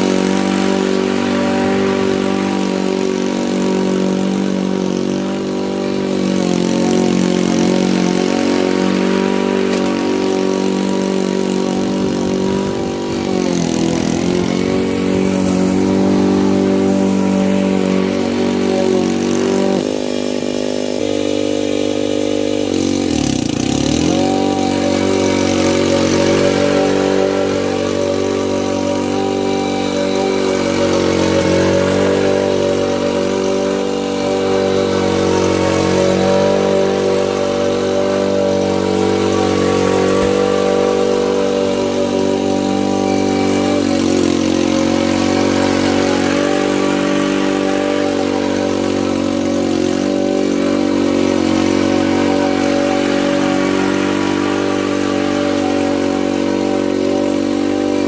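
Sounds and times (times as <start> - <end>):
lawn mower running: 0.0 - 58.0.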